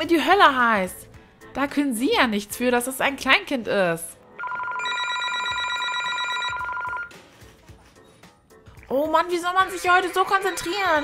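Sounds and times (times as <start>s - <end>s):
telephone ringing with electronic trill: 4.4s - 7.2s.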